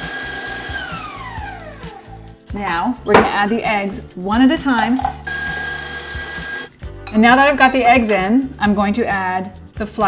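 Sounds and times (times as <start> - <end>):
stand mixer motor whining: 0.0 - 2.1, 5.3 - 6.7.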